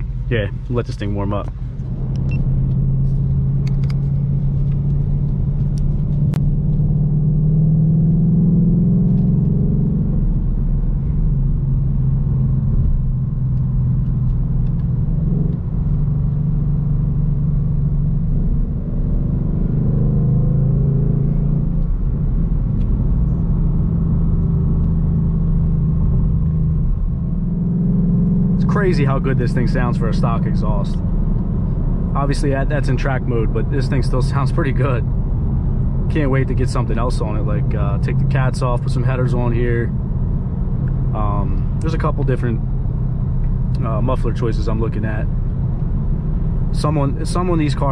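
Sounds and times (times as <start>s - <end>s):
car exhaust drone from cabin: 0.0s - 47.9s.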